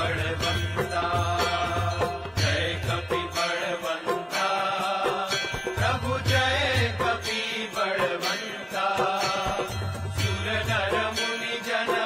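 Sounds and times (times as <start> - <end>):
bells ringing: 0.0 - 12.0
chanted singing over instruments: 0.0 - 12.0.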